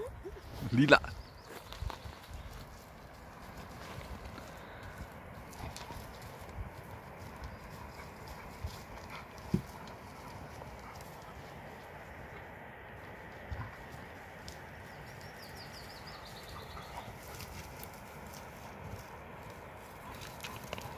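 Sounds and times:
dogs scuffling on stony ground: 0:00.4 - 0:20.9.

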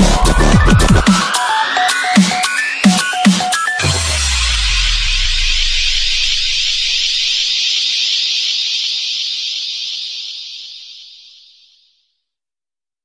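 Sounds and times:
low bass rumble: 0:03.8 - 0:07.4
hiss-like noise wash: 0:05.2 - 0:12.0.

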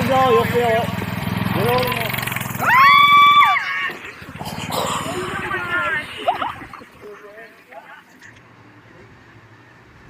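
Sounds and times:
small engine puttering: 0:00.0 - 0:06.0
high-pitched held cry: 0:02.6 - 0:04.0.

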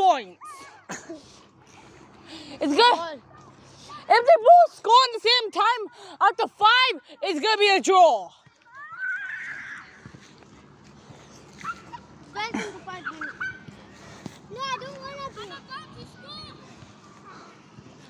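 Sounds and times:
distant children shouting: 0:08.5 - 0:10.4.

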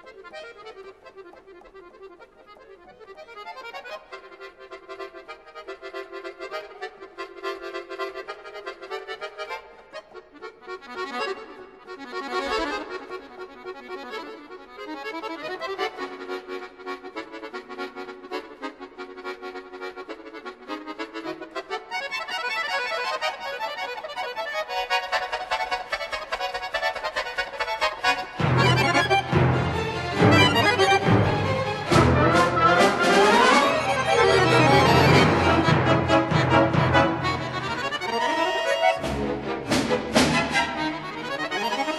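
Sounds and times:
accordion bass notes and chords: 0:00.0 - 0:41.9
button accordion fast treble passage: 0:00.0 - 0:41.9.

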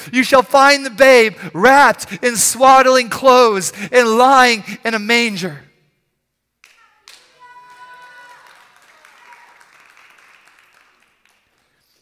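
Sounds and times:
faint applause: 0:06.7 - 0:12.0.

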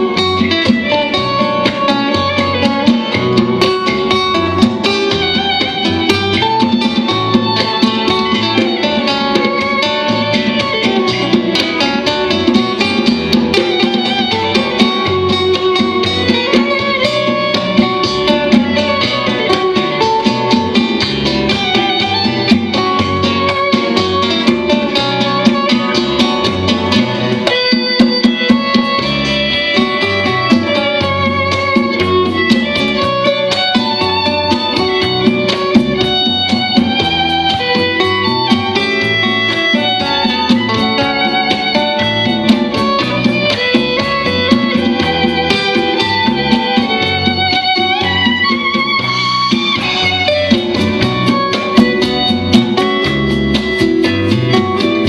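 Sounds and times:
acoustic guitars strumming: 0:00.0 - 0:55.0
hand drums: 0:00.0 - 0:55.0
violin melody: 0:00.0 - 0:55.0.

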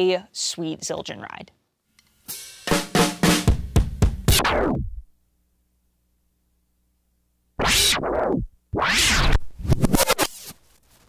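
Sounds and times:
flanged drum fill: 0:02.4 - 0:05.0.

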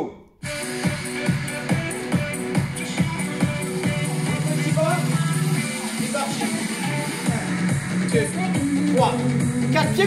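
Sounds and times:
upbeat electronic music: 0:00.4 - 0:10.0.

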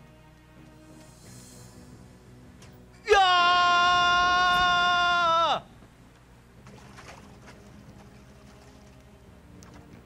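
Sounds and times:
person yelling: 0:03.0 - 0:05.7.

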